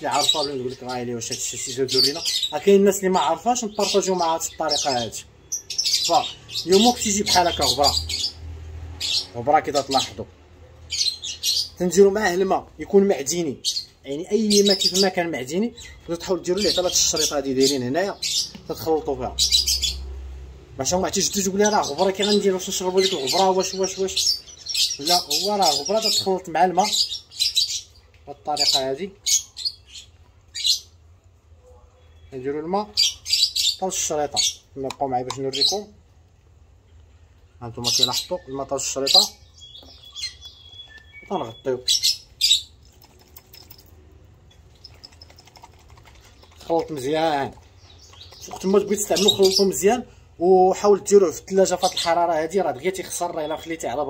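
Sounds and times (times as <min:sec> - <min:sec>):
man talking: 0:00.0 - 0:05.3, 0:06.0 - 0:08.1, 0:11.8 - 0:19.4, 0:33.8 - 0:36.0, 0:37.6 - 0:39.4, 0:41.3 - 0:41.9, 0:46.6 - 0:47.6, 0:48.4 - 0:54.0
caged birds squawking and chirping: 0:00.0 - 0:54.0.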